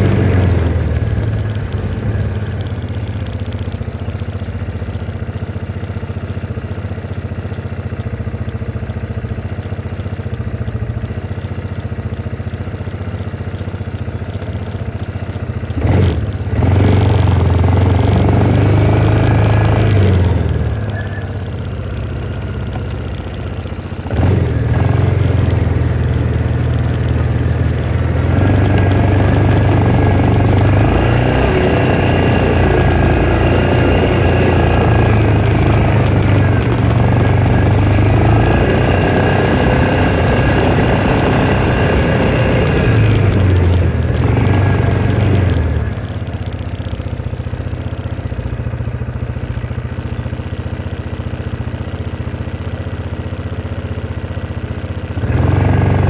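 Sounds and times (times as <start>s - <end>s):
utility vehicle engine running: 0.0s - 56.0s.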